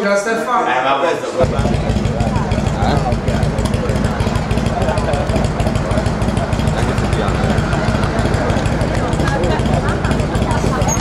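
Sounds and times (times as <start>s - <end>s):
people talking: 0.0s - 11.0s
motorcycle engine idling: 1.4s - 11.0s.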